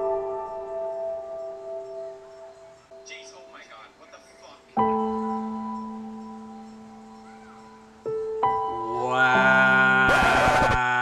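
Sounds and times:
slow soft piano music: 0:00.0 - 0:11.0.

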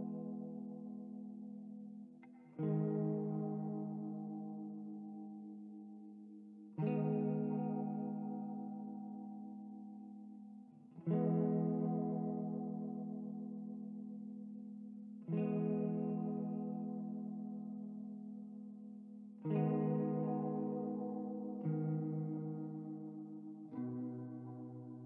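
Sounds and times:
clean guitar chords with echo: 0:00.0 - 0:25.0.

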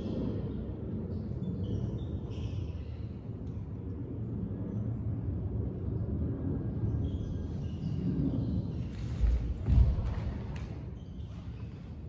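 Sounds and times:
low rumble of room noise: 0:00.0 - 0:12.0.

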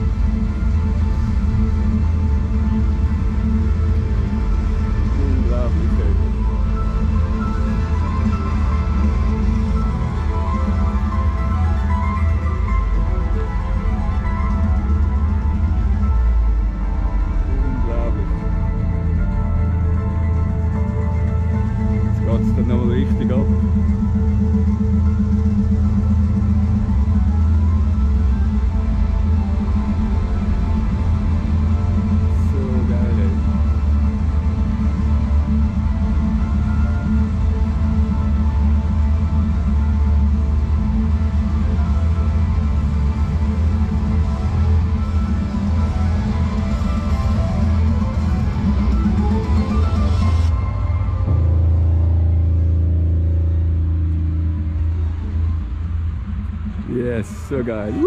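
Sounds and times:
loud music with heavy bass: 0:00.0 - 0:58.0.

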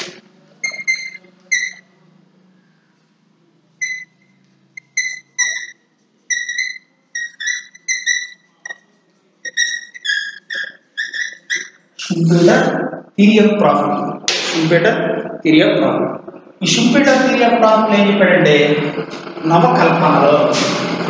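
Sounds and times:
chalk squeaking on chalkboard: 0:00.0 - 0:01.9, 0:03.8 - 0:04.1, 0:04.8 - 0:12.7.

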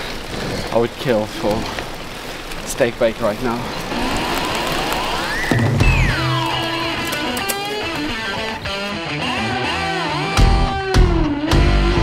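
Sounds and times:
rock music with electric guitar: 0:05.6 - 0:12.0.

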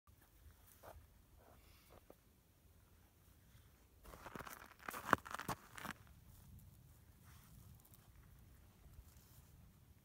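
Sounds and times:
snow crunching: 0:04.0 - 0:06.1.

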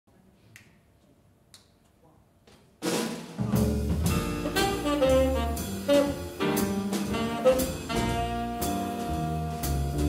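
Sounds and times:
drum kit crash: 0:02.8 - 0:10.0
jazz band playing: 0:02.9 - 0:10.0
double bass: 0:03.4 - 0:10.0
piano: 0:03.4 - 0:10.0.

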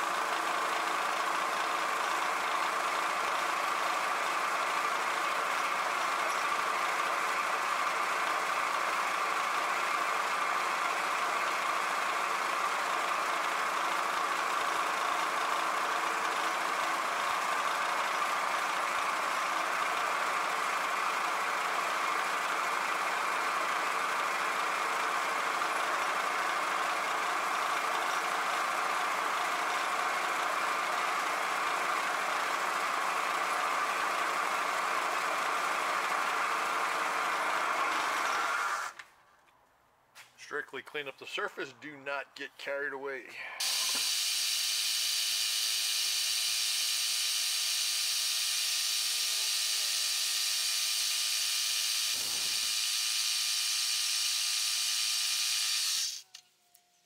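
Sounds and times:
milling machine spindle hum: 0:43.6 - 0:56.2.

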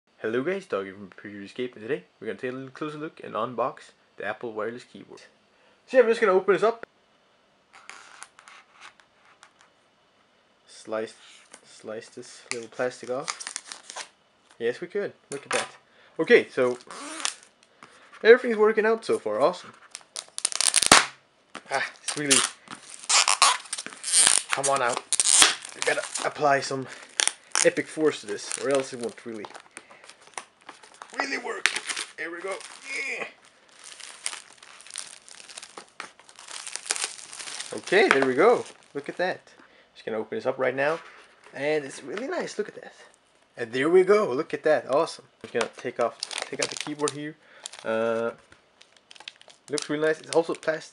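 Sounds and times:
knife scratching plastic wrap: 0:22.0 - 0:26.4, 0:27.0 - 0:33.0, 0:33.8 - 0:38.9.

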